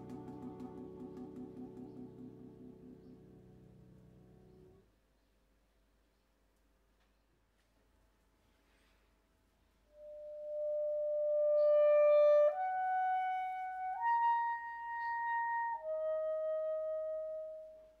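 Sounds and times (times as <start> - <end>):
clarinet playing long notes: 0.0 - 3.5, 9.9 - 18.0.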